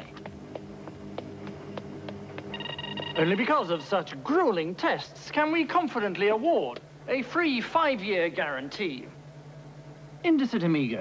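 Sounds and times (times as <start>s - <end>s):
low synthesizer drone: 0.0s - 4.9s
high electronic tones: 2.5s - 4.0s.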